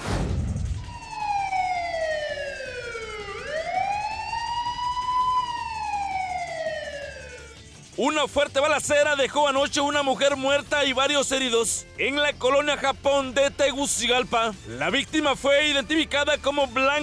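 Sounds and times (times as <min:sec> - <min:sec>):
sudden low hit: 0:00.0 - 0:00.9
police siren wailing: 0:00.5 - 0:11.7.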